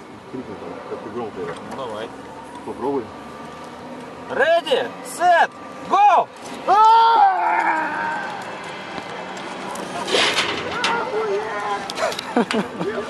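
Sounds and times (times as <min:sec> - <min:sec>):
man yelling: 0:05.2 - 0:08.4
scattered voices: 0:05.9 - 0:13.0.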